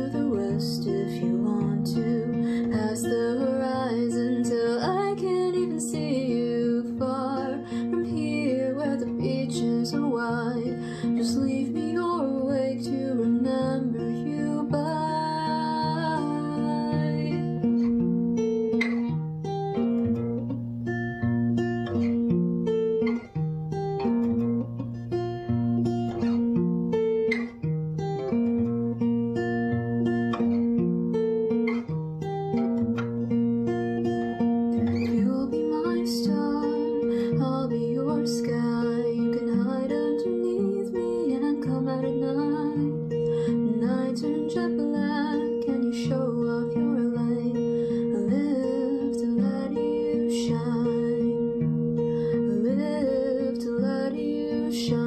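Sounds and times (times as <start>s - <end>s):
young woman singing: 0.0s - 18.1s, 34.4s - 55.0s
acoustic guitar picking: 0.0s - 55.0s.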